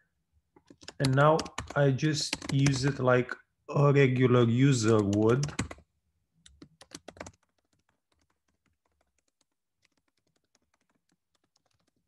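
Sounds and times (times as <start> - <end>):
typing on computer keyboard: 0.6 - 3.0, 4.8 - 5.8, 6.4 - 12.0.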